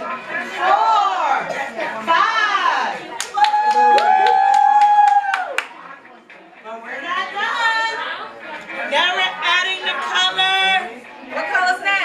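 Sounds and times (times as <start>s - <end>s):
hand clapping: 3.1s - 5.8s
people talking: 5.6s - 12.0s.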